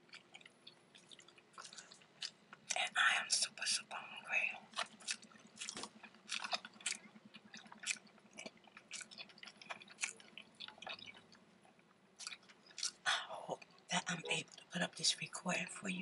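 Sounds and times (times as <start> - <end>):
crunchy chewing: 0.0 - 14.7.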